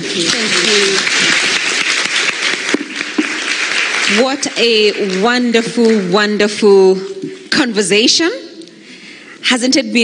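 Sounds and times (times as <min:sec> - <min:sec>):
audience applauding: 0:00.0 - 0:05.5.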